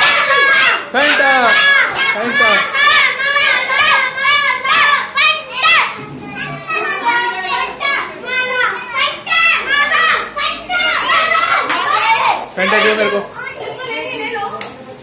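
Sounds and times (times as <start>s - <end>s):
children shouting excitedly: 0.0s - 14.6s.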